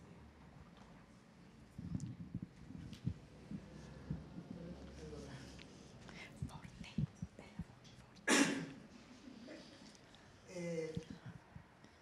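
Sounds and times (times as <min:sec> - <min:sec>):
faint whispering: 0:01.7 - 0:07.9.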